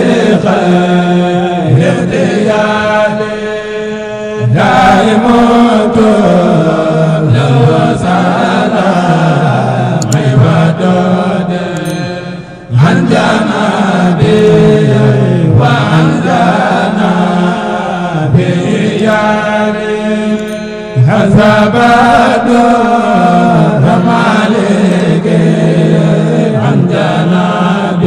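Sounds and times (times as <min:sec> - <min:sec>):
man chanting a devotional song: 0:00.0 - 0:28.0.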